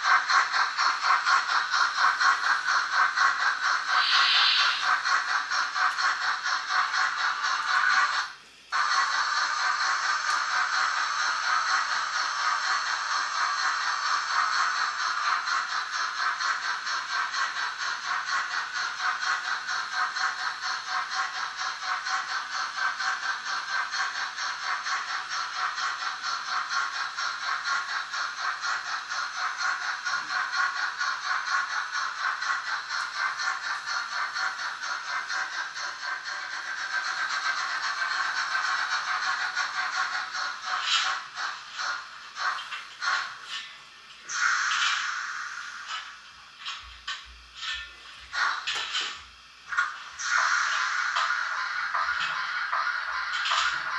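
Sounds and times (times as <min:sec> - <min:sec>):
model train wheels clattering on track: 0:00.0 - 0:53.9.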